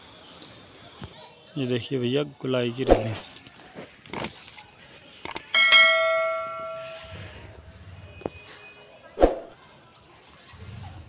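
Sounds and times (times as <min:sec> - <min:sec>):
mouse clicks: 0:04.1 - 0:04.4, 0:05.2 - 0:05.5
bell ding: 0:05.5 - 0:07.5.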